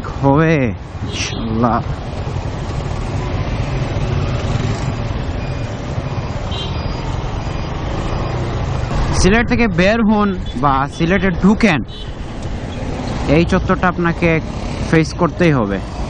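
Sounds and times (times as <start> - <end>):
road noise: 0.0 - 16.0.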